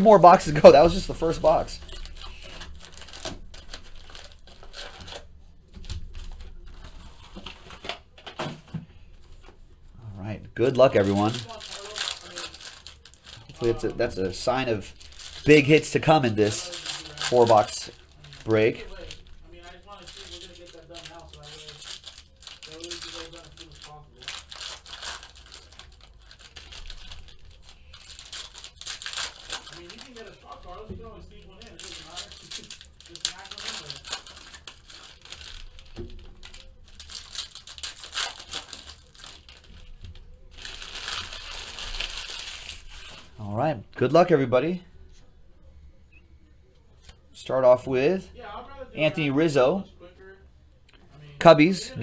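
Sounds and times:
foil wrappers crinkling and tearing: 0.0 - 8.0, 10.6 - 43.5.

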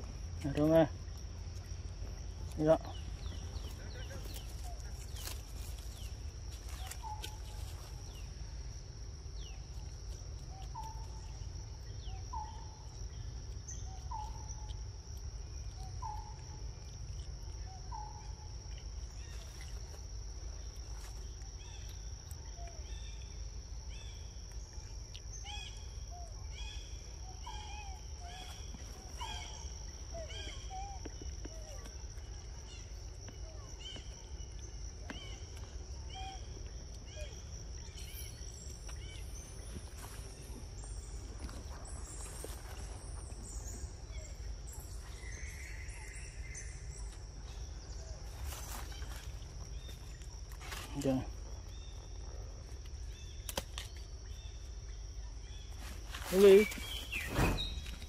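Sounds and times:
bird calls and chirps: 2.6 - 8.3, 10.4 - 14.8, 23.9 - 50.2, 53.1 - 58.0
high insect drone: 22.9 - 58.0.

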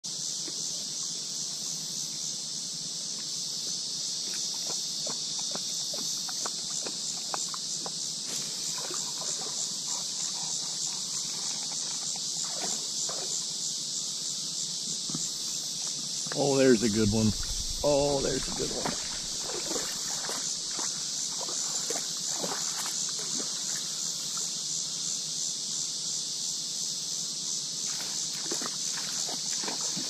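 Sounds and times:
insects droning in chorus: 0.0 - 30.0.

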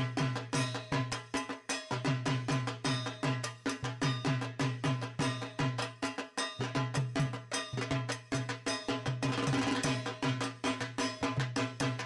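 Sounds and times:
fast drumming with metallic clink: 0.0 - 12.0.

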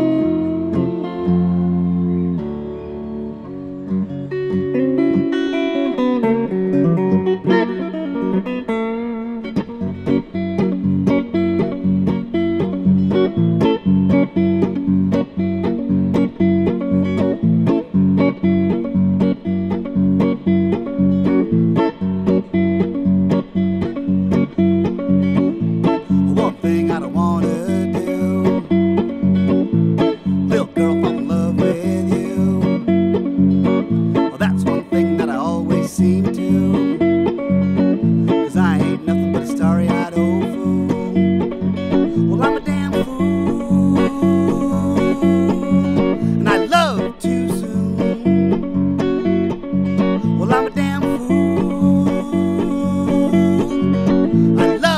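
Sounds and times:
electric guitar picked notes: 0.0 - 54.9.

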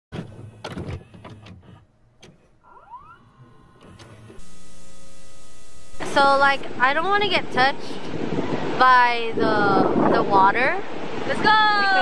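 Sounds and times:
mechanical clicks and clunks: 0.1 - 4.7
hum: 0.2 - 10.0
short rising whir: 2.4 - 8.9
static hiss: 4.0 - 6.7.

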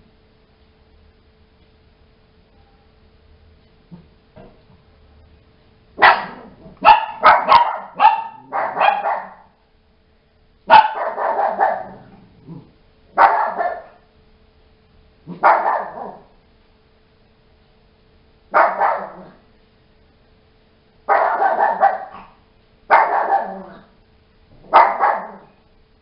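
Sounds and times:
small dog barking: 6.0 - 9.6, 10.7 - 12.2, 13.1 - 14.0, 15.3 - 16.3, 18.5 - 19.4, 21.1 - 23.9, 24.6 - 25.6.

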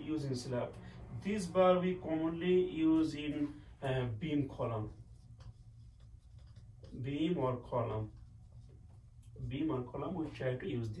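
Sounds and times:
marker pen writing on whiteboard: 2.8 - 10.4.

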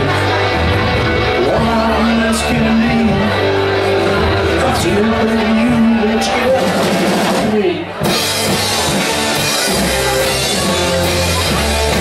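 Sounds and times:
bass guitar: 0.0 - 12.0
drum kit: 0.0 - 12.0
electric guitars: 0.0 - 12.0.

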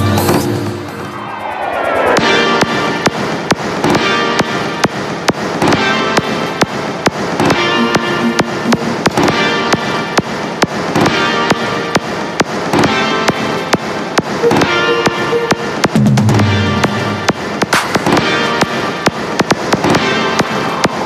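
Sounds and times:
sharply hit drum beat: 2.2 - 21.0.

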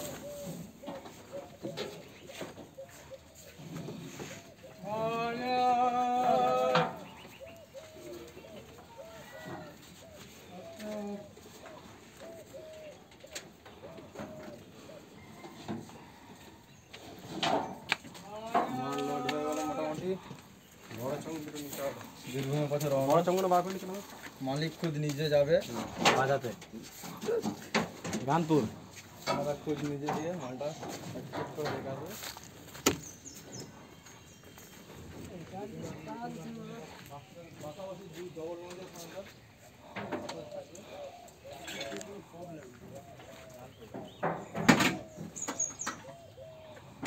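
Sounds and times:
bird calling: 0.0 - 5.0, 6.8 - 16.8, 39.1 - 47.0.

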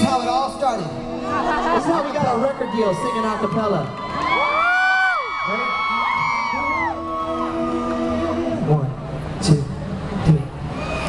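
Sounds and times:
men singing a cappella harmony: 0.8 - 2.0, 6.6 - 9.1
crowd cheering and screaming: 1.1 - 8.6, 10.7 - 11.0.

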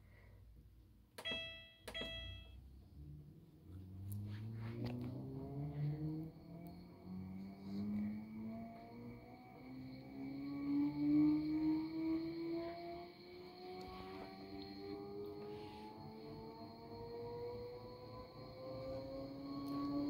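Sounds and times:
washing machine spin whine: 1.2 - 20.0.

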